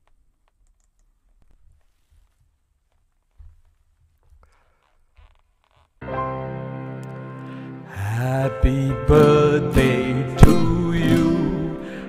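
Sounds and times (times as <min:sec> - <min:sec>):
soft rustles and clicks: 0:00.0 - 0:06.0.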